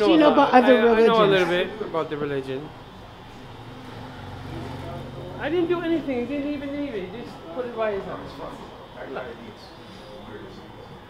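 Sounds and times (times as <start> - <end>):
vehicle engine humming: 1.2 - 9.2.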